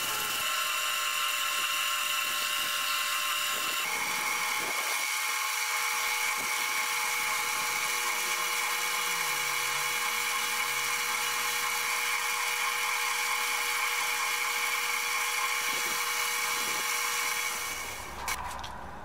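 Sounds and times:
sanding spinning workpiece: 0.0 - 18.2
lathe motor whining: 0.0 - 18.5.

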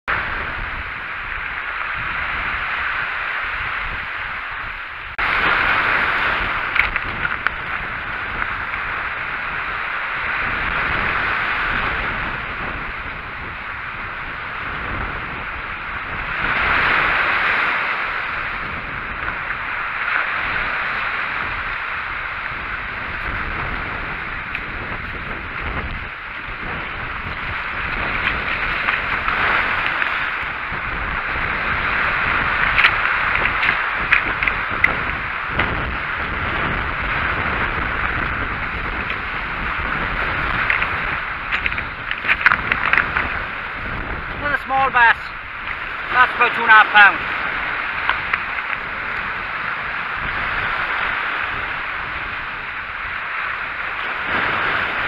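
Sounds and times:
sea waves breaking on pebbly shore: 0.1 - 55.0
wind on microphone: 0.1 - 55.0.

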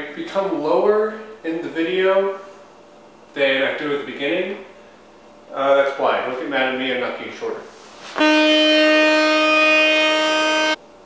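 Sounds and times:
buzzy horn-like tone: 8.0 - 10.8.

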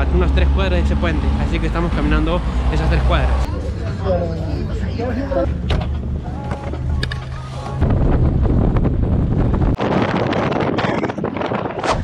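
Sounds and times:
voices: 0.0 - 7.8
low vehicle hum: 0.0 - 9.8
wind buffeting camera: 6.8 - 12.0.

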